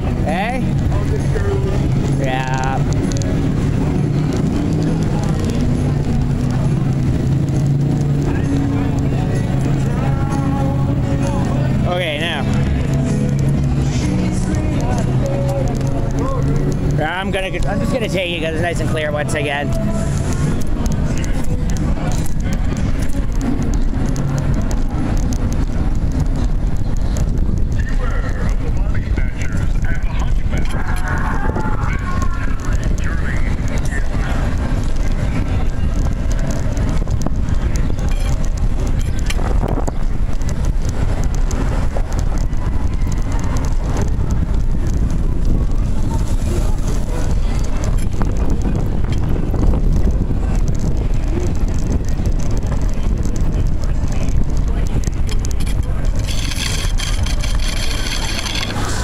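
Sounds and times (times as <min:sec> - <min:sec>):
wheelchair rolling on pavement: 0:00.0 - 0:59.0
wind buffeting microphone: 0:00.0 - 0:59.0.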